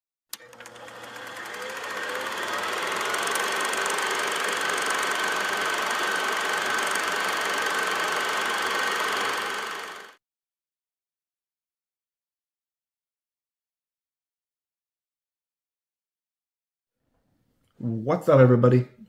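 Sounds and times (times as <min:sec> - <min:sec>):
film projector clatter and whir: 0:00.3 - 0:10.2
film projector click: 0:00.3 - 0:10.2.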